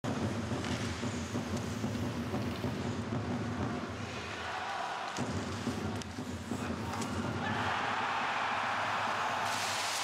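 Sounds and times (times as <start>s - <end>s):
rink and crowd rumble: 0.1s - 10.0s.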